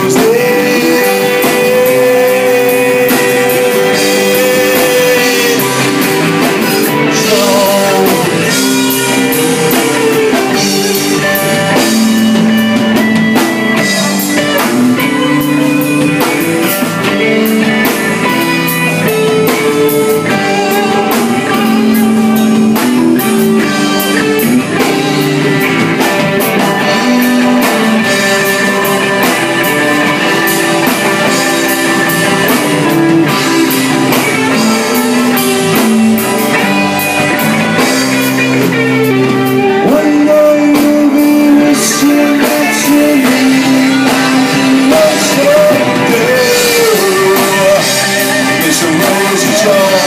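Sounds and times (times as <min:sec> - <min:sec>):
man singing: 0:00.0 - 0:12.8, 0:13.8 - 0:26.0, 0:31.1 - 0:36.8, 0:37.4 - 0:50.0
drums: 0:00.0 - 0:50.0
guitars playing: 0:00.0 - 0:50.0.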